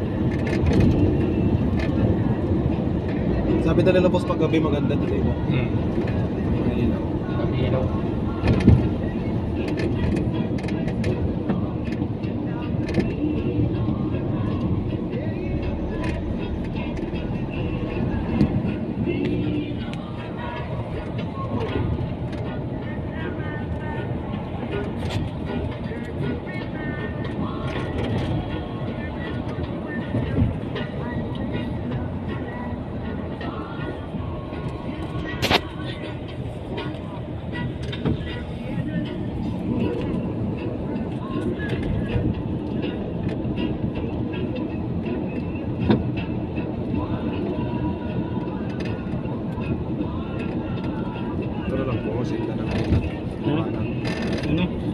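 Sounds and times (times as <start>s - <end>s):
car road and engine noise: 0.0s - 54.9s.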